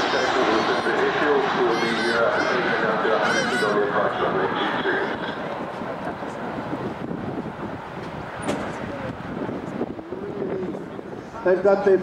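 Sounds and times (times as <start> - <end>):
faint voices: 0.0 - 7.0, 8.3 - 12.0
jet airliner flying overhead: 0.0 - 12.0.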